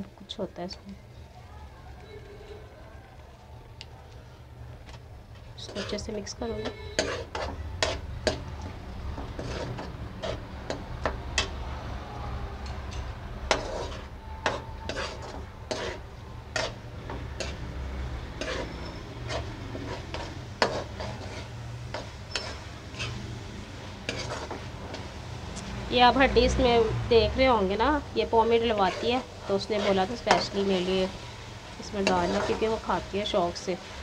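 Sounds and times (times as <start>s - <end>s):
metal spatula scraping a pan: 5.6s - 11.6s, 12.6s - 25.2s, 28.2s - 34.0s
meat sizzling in oil: 13.3s - 34.0s.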